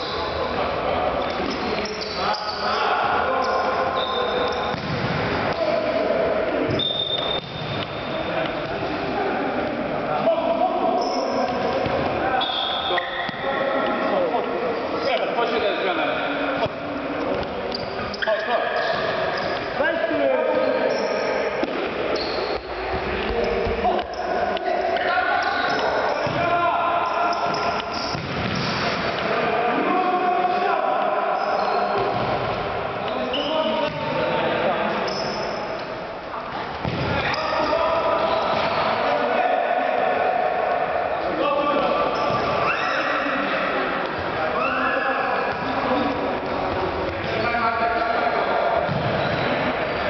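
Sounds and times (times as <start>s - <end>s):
football kicked and bouncing: 4.7s - 5.2s, 28.1s - 28.8s, 36.8s - 37.2s
players calling out: 23.2s - 50.0s.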